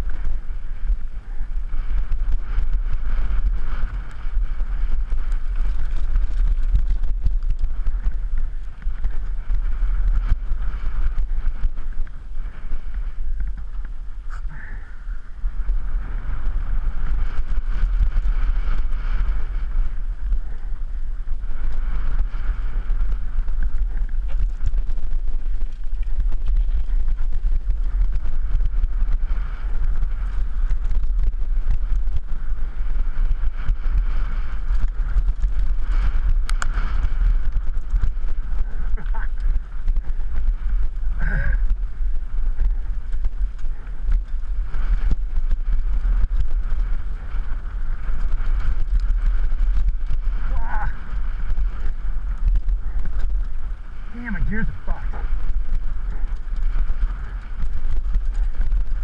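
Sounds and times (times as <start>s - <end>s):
bike chatter and rattles: 0.0s - 59.0s
tyres rumbling on dirt trail: 0.0s - 59.0s
wind buffeting microphone: 0.0s - 59.0s.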